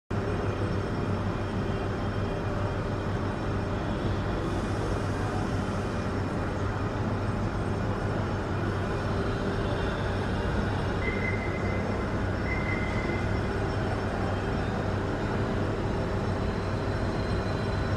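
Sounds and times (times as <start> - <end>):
constant hum: 0.1 - 17.9.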